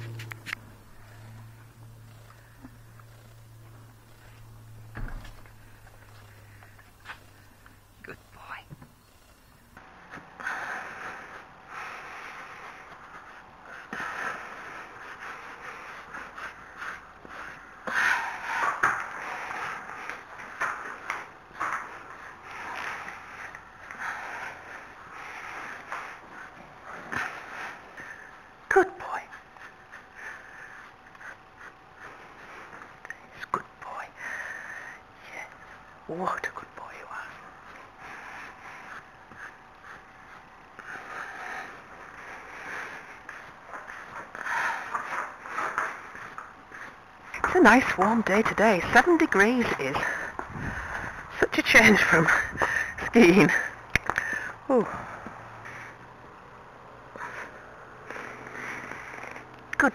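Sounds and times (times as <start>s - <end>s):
horse breathing and sniffing: 0.0s - 9.8s.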